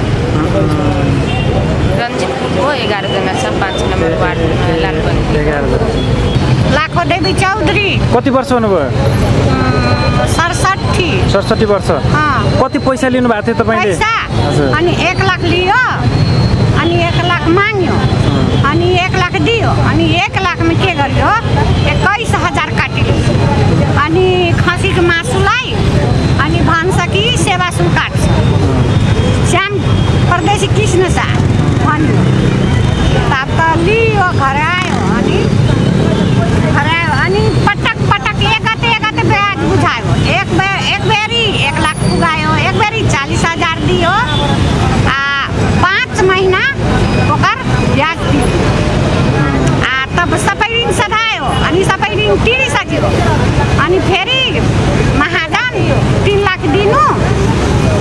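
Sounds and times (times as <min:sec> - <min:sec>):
street traffic rumble: 0:00.0 - 0:58.0
woman talking: 0:02.0 - 0:05.0, 0:16.7 - 0:18.0, 0:18.6 - 0:25.8, 0:26.4 - 0:28.3, 0:29.4 - 0:32.2, 0:33.3 - 0:35.6, 0:36.7 - 0:44.3, 0:45.0 - 0:48.5, 0:49.4 - 0:57.3.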